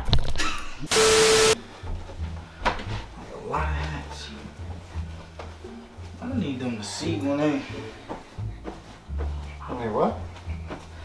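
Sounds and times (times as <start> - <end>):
static hiss burst with tone: 0.9 - 1.6.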